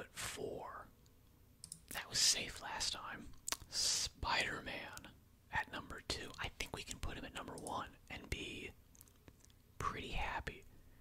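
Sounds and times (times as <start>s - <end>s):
man whispering: 0.0s - 0.9s, 1.9s - 8.8s, 9.8s - 10.8s
sharp click: 1.6s - 1.9s.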